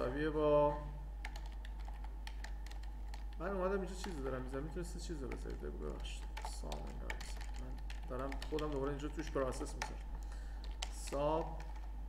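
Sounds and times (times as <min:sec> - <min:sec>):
steady low hum: 0:00.0 - 0:12.0
keyboard typing: 0:01.2 - 0:12.0.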